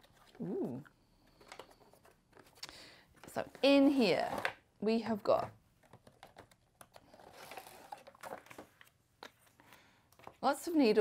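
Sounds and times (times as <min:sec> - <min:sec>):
cardboard and plastic rustling: 0:05.8 - 0:10.4.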